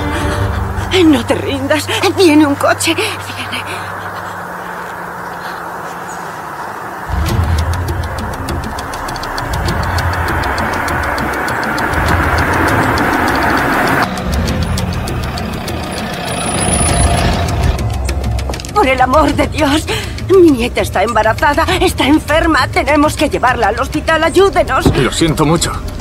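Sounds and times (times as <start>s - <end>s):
background music: 0.0s - 4.0s, 7.1s - 26.0s
car engine approaching: 0.0s - 26.0s.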